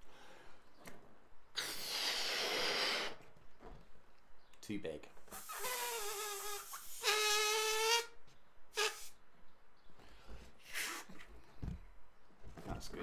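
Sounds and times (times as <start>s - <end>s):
sharp breath: 1.6s - 3.2s
balloon neck squealing: 5.3s - 9.2s.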